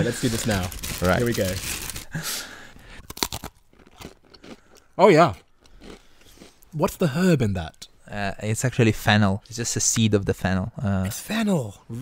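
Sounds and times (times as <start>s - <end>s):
biscuit crunching: 3.0s - 6.6s
chewing crunches: 3.0s - 6.7s.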